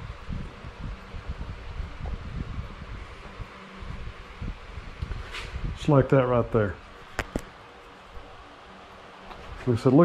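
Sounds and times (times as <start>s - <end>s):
low hum: 0.0s - 9.9s.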